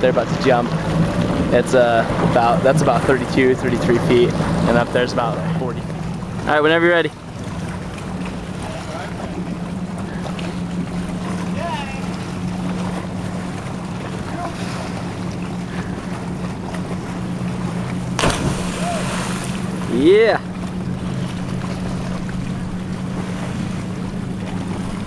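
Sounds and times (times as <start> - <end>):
boat motor idling: 0.0 - 25.0
splash into water: 18.1 - 19.9.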